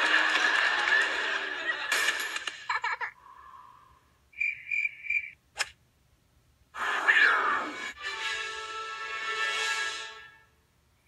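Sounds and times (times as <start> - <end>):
studio audience laughter: 0.0 - 1.9
sharp click: 5.6 - 5.8.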